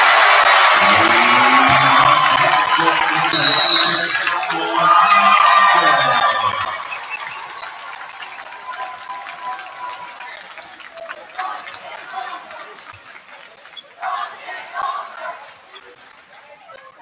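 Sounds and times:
crowd cheering: 0.0 - 17.0
referee's whistle: 0.4 - 10.7.

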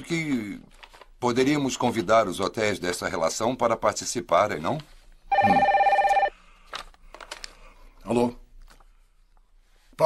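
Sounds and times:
desk telephone ringing: 5.3 - 6.4.

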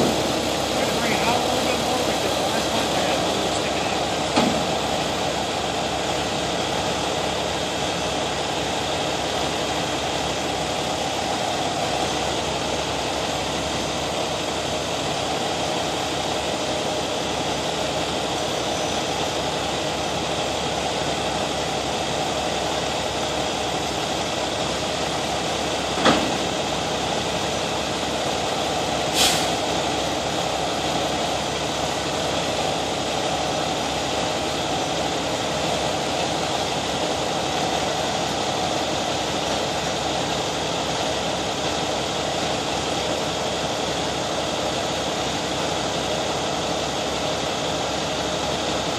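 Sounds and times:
diesel engine running: 0.0 - 48.9.

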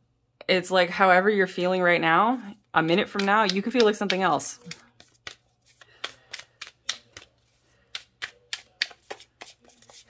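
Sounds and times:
cards being shuffled: 2.9 - 10.0.

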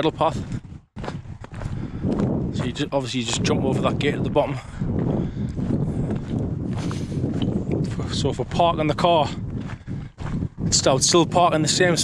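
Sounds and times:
footsteps on gravel: 0.0 - 12.0
wind rumbling on microphone: 0.0 - 12.0.

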